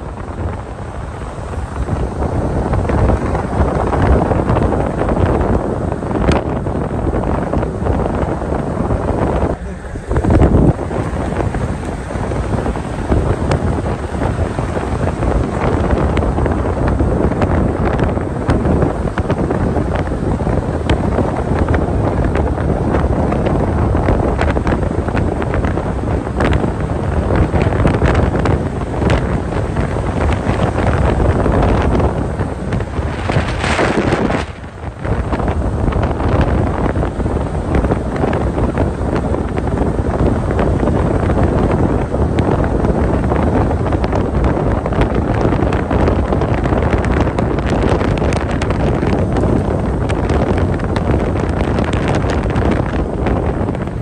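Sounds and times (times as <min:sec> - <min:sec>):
car road and tyre noise: 0:00.0 - 0:54.0
wind rushing over microphone: 0:00.0 - 0:54.0.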